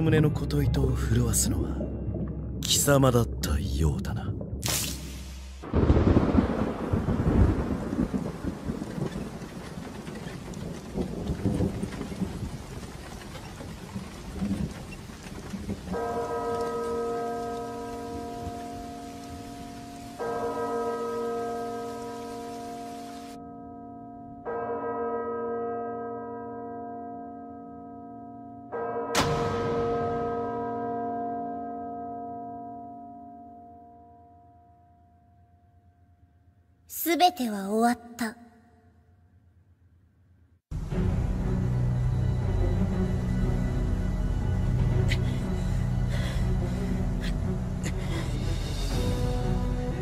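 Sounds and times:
church bell tolling: 0:15.9 - 0:35.9.

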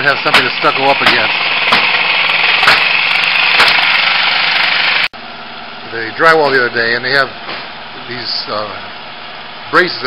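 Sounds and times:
electric saw cutting: 0:00.0 - 0:05.1.

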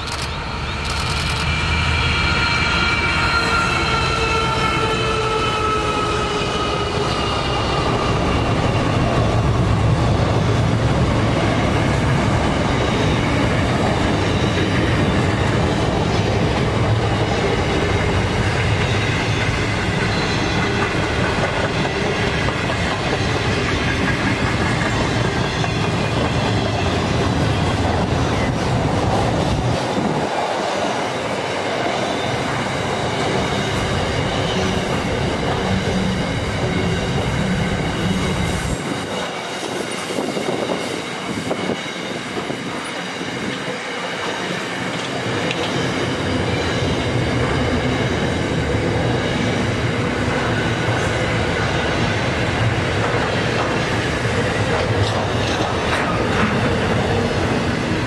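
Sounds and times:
freight train rolling past: 0:00.0 - 0:58.0.

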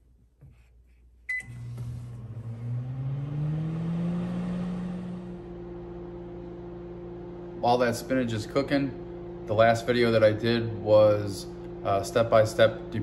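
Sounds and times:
microwave keypad beep: 0:01.3 - 0:01.6
microwave running hum: 0:01.3 - 0:13.0.

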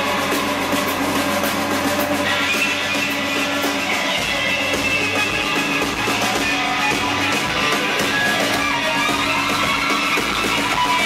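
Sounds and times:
bass guitar droning chords: 0:00.0 - 0:11.0
distorted electric guitars: 0:00.0 - 0:11.0
drums: 0:00.0 - 0:11.0.

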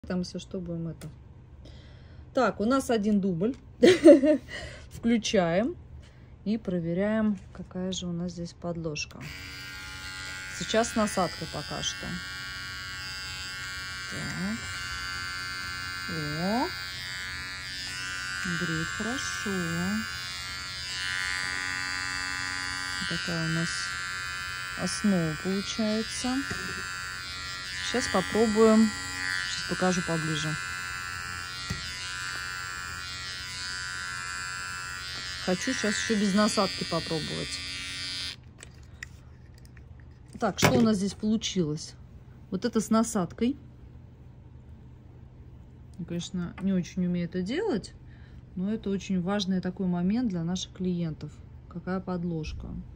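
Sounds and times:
electric hair clipper buzzing: 0:09.2 - 0:38.5.

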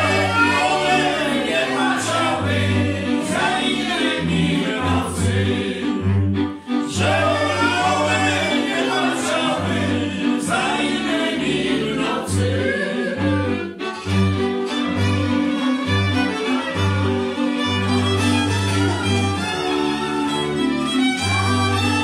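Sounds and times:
voices singing together: 0:00.0 - 0:14.2
string band playing: 0:00.0 - 0:22.0.

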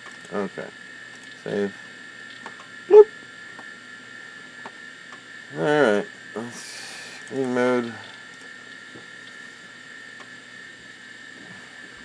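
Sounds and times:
computer equipment humming: 0:00.0 - 0:12.0.

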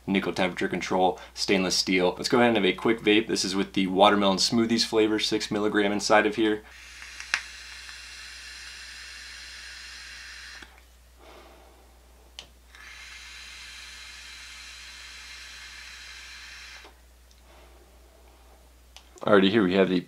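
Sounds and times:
vape air hiss: 0:06.6 - 0:11.8, 0:12.7 - 0:17.8.

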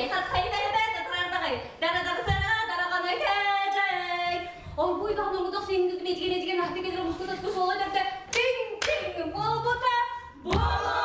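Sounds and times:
group singing: 0:08.9 - 0:11.0.

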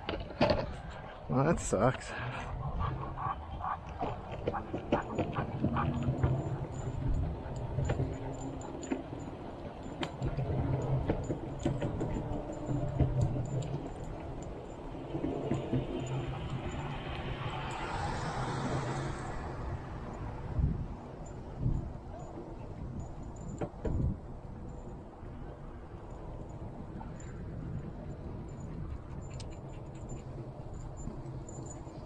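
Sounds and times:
wind noise: 0:00.0 - 0:32.0
bicycle rolling: 0:02.0 - 0:32.0
metallic jingling and clinking: 0:03.1 - 0:32.0.

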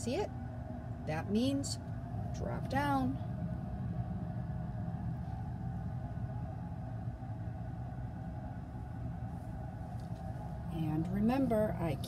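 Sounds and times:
faint steady tones: 0:00.0 - 0:12.0
room background rumble and hum: 0:00.0 - 0:12.0.

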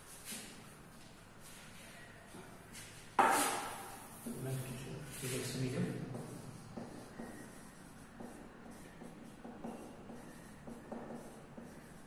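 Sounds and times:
marker pen writing on whiteboard: 0:03.2 - 0:12.0.

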